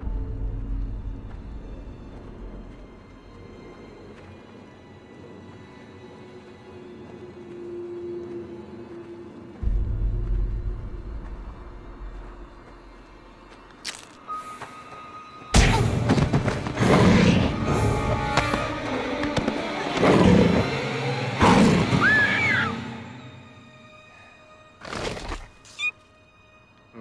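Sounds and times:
dramatic horror film score: 0.0 - 27.0.

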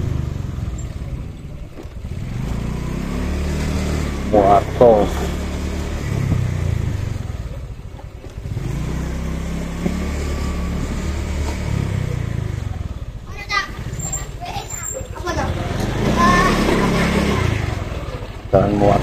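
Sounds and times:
motorcycle engine droning: 0.0 - 19.0
voices including children: 11.8 - 19.0.

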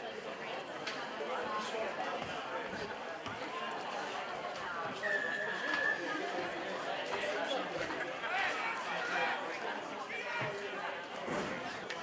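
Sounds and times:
chatter and shouting: 0.0 - 12.0.

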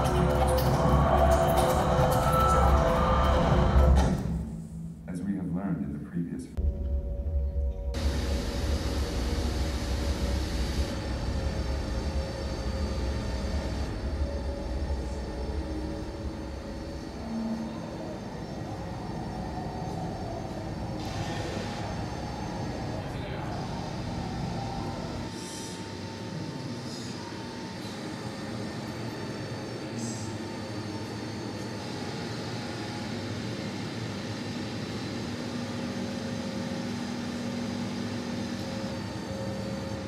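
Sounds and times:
noisy low rumble: 0.0 - 25.4.

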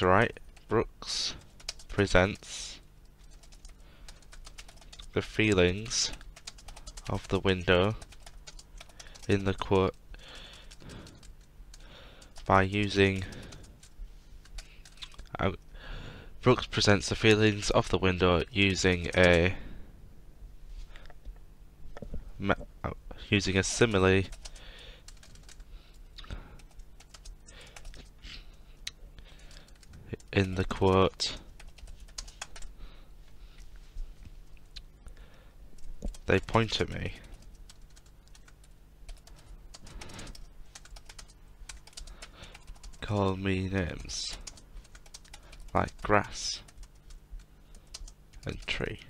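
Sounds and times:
computer keyboard typing: 1.3 - 15.3, 18.4 - 19.5, 23.6 - 28.2, 29.4 - 32.7, 35.8 - 43.1, 43.8 - 48.8.

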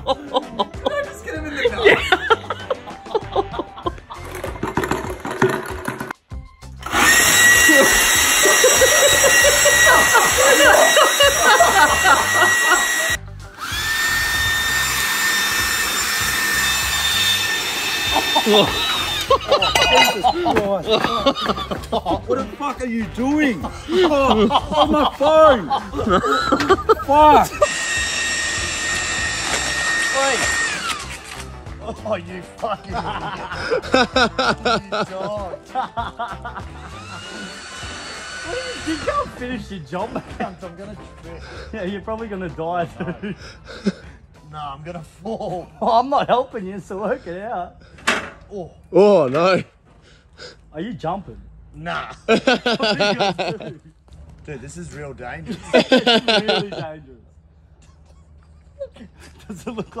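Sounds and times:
leaf blower running: 6.8 - 21.9, 23.8 - 31.6, 36.6 - 39.4.

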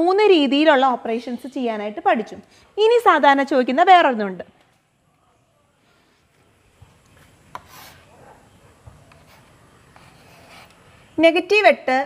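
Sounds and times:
chalk scraping across board: 7.5 - 8.1, 9.1 - 10.8
duster rubbing on chalkboard: 7.5 - 8.2, 9.1 - 10.8.

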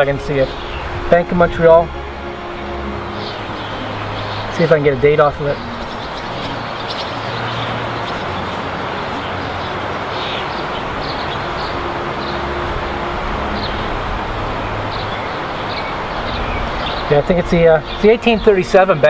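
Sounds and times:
high bird-like chirps: 5.5 - 12.4.

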